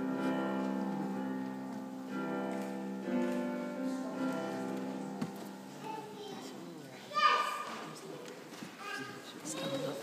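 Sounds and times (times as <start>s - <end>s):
low background voices: 0.0s - 10.0s.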